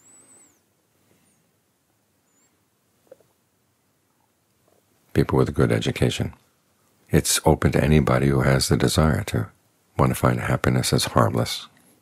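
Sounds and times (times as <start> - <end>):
faint high squeak: 0.0 - 0.7.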